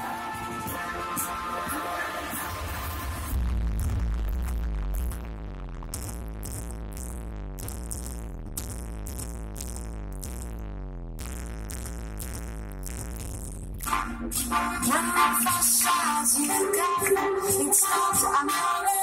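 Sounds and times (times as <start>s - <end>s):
person singing: 0.0s - 3.2s, 13.9s - 19.0s
low bass: 0.0s - 17.6s
high ticking beat: 0.0s - 19.0s
live band playing: 13.8s - 17.8s.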